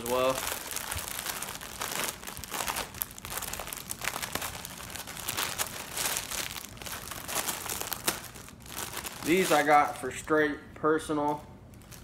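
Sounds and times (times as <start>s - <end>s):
plastic packaging crinkling: 0.0s - 10.3s, 11.1s - 12.0s.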